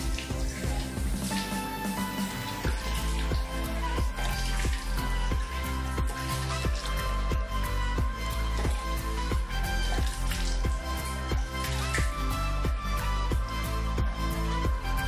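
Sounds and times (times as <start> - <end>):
background music with steady beat: 0.0 - 15.0.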